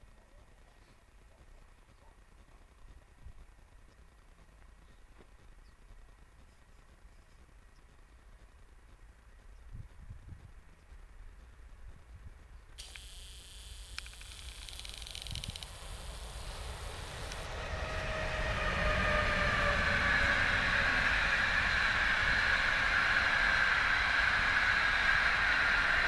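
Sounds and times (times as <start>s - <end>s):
thin high hiss: 12.8s - 17.5s
train wheels rumbling on rails: 14.1s - 26.0s.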